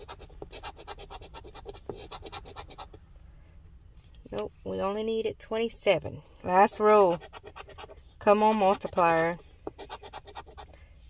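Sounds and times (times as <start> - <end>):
coin scraping scratch card: 8.5 - 10.6.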